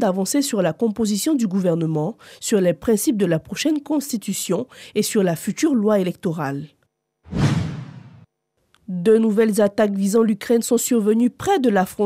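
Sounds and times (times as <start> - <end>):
whoosh sound effect: 7.3 - 8.3.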